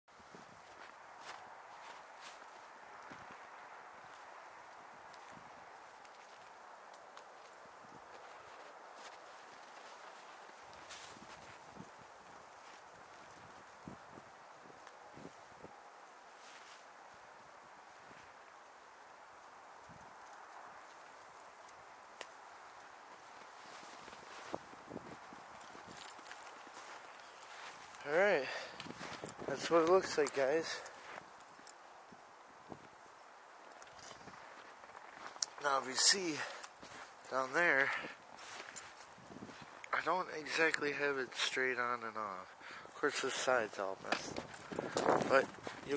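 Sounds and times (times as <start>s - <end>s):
steady outdoor hiss: 0.1s - 45.9s
footsteps crunching in snow: 0.2s - 6.6s, 7.2s - 14.1s, 16.3s - 17.0s, 22.7s - 31.7s, 33.6s - 41.5s, 43.3s - 45.9s.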